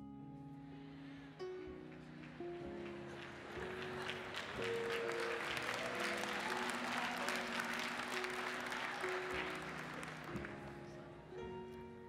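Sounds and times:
soft instrumental music: 0.0s - 12.0s
congregation applauding: 1.4s - 11.2s.

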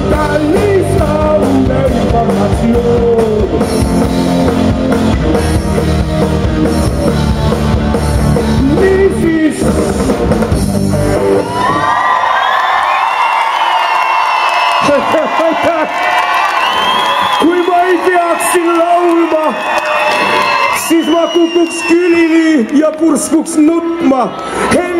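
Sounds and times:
live rock band playing: 0.0s - 12.0s
crowd cheering and whooping: 11.0s - 24.9s.

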